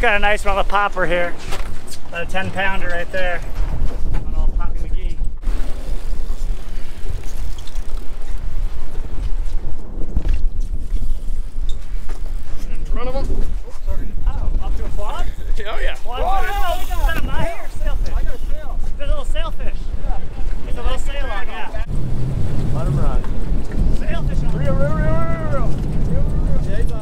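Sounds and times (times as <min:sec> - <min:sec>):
strong wind buffeting microphone: 0:00.0 - 0:27.0
voices calling out: 0:15.2 - 0:18.8.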